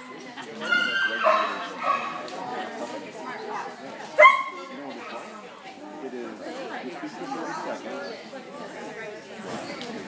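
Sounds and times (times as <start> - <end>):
dog barking: 4.2 - 4.6.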